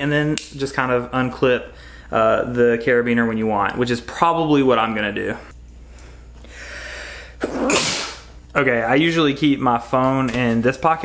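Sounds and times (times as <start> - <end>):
faint breath in: 5.9 - 7.4
man sneezing: 7.4 - 8.3.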